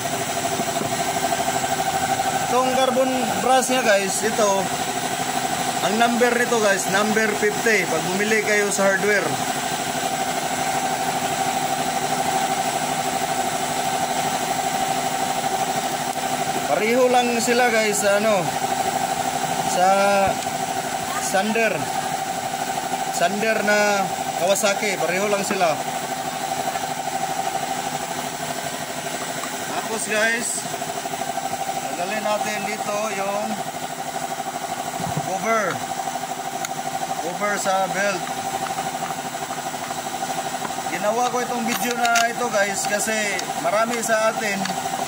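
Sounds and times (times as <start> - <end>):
steady mechanical hum: 0.0 - 45.0.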